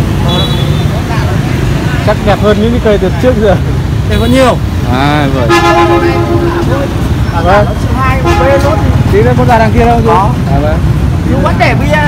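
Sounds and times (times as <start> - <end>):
people talking: 0.2 - 12.0.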